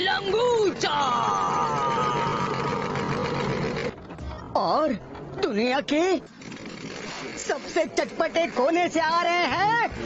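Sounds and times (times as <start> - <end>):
cartoon car engine: 0.3 - 4.1.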